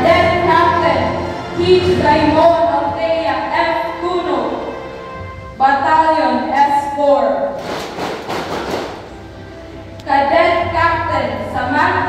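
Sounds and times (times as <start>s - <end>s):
audience applause in large hall: 7.6s - 9.1s.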